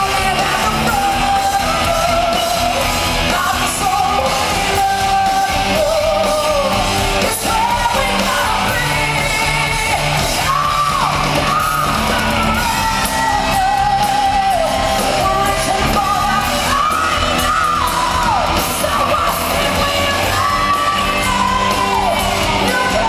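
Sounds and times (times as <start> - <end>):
live rock band: 0.0 - 23.0
woman singing: 0.0 - 23.0.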